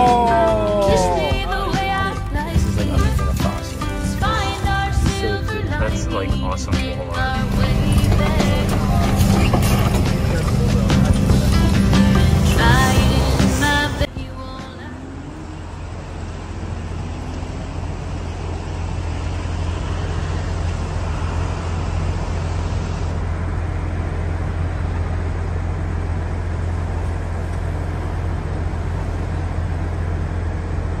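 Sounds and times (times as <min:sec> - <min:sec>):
low rumble: 0:00.0 - 0:31.0.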